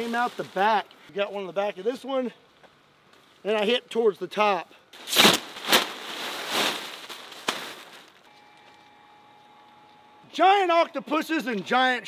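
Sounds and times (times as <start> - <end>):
fabric snapping: 5.0 - 7.9
nylon fabric rustling and crinkling: 5.0 - 8.3.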